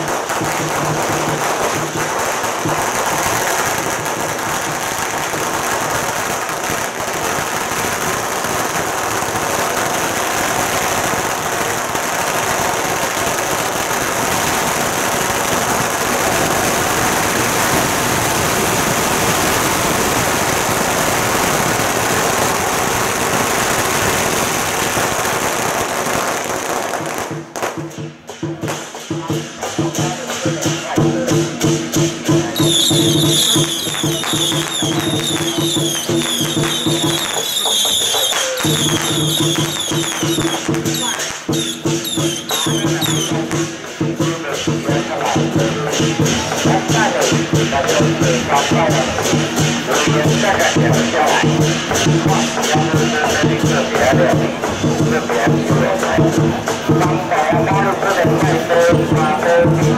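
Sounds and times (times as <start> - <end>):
firecrackers crackling: 0.0 - 59.9.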